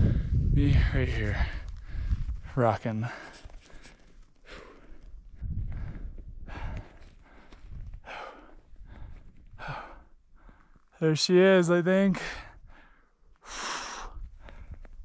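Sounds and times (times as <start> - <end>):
person breathing heavily: 0.0 - 2.4, 3.0 - 10.9, 12.2 - 15.0.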